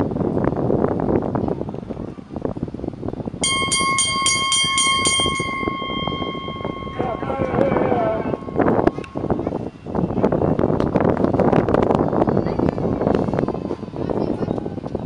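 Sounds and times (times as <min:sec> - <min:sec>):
bell ringing rapidly: 0:03.4 - 0:09.4
spectators chattering: 0:03.5 - 0:10.8, 0:12.0 - 0:15.0.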